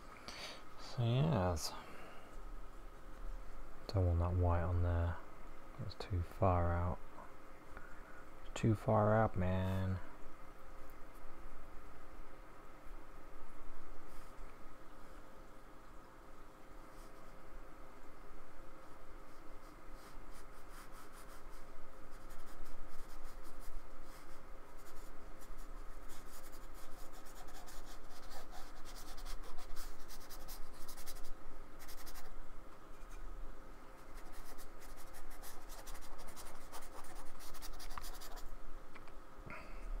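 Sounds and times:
paintbrush dabbing on paper: 19.3 - 32.3, 34.0 - 38.5.

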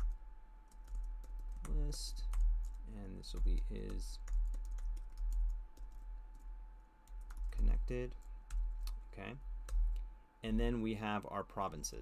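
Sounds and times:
keyboard typing: 0.0 - 9.0, 9.6 - 10.0
steady low hum: 0.0 - 12.0.

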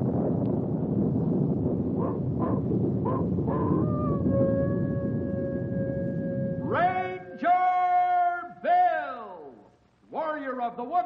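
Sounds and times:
steady rushing noise: 0.0 - 8.7
long held animal call: 3.5 - 7.4.

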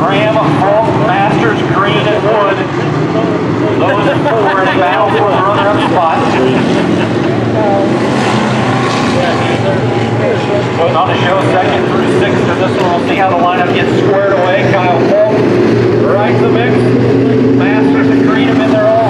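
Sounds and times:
stock car engines droning: 0.0 - 19.0
voices: 0.0 - 19.0.

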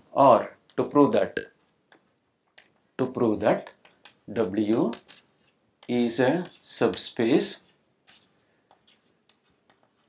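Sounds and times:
chalk scratching on chalkboard: 3.7 - 10.0.

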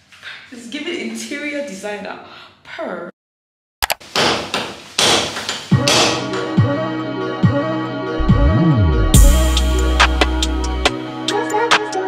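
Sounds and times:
hammer striking a wall: 4.1 - 6.4
background music with bass beat: 5.8 - 12.0.

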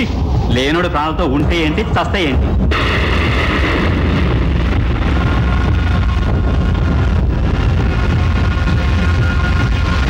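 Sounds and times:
loud low drone: 2.4 - 10.0.

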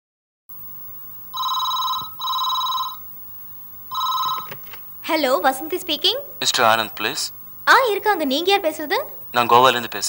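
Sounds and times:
landline telephone ringing: 1.3 - 3.1, 3.9 - 4.8.

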